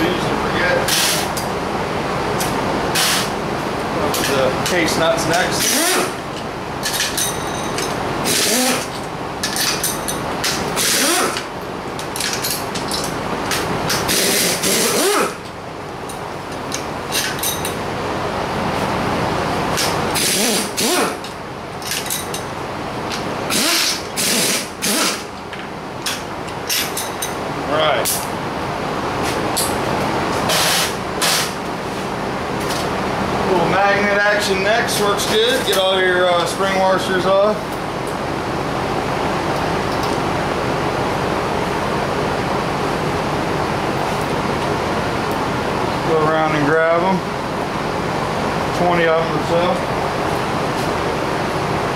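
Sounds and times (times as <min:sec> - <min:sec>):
steady background noise: 0:00.0 - 0:51.9.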